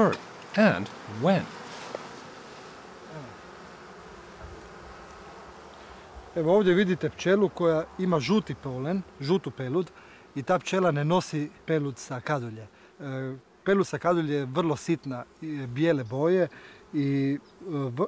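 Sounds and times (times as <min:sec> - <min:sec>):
bee buzzing loudly close up: 0:00.0 - 0:18.0
honeybees humming: 0:00.0 - 0:18.0.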